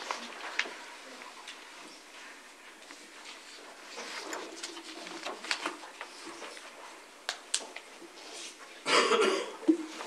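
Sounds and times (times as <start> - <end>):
person coughing: 8.9 - 9.9.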